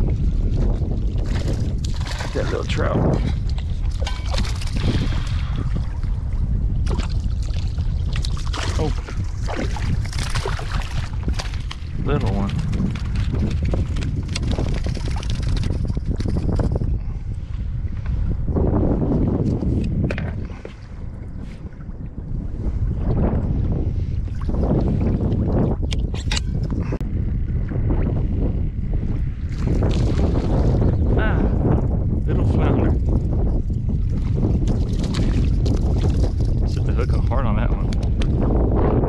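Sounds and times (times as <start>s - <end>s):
wind buffeting microphone: 0.0s - 39.0s
water sloshing around kayak: 0.4s - 16.6s, 34.0s - 36.8s.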